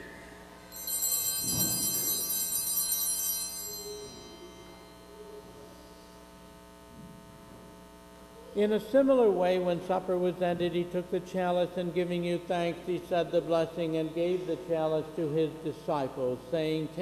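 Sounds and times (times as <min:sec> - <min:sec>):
small altar bells ringing: 0:00.0 - 0:06.0.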